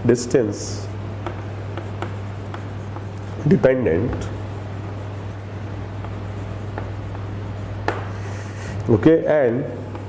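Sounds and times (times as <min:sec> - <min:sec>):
chalk scratching on chalkboard: 0:01.2 - 0:08.8.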